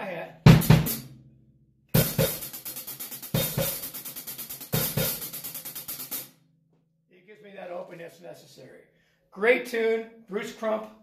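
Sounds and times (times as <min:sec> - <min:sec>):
accented drum hit: 0:00.5 - 0:01.2
hi-hat strokes: 0:02.0 - 0:06.3.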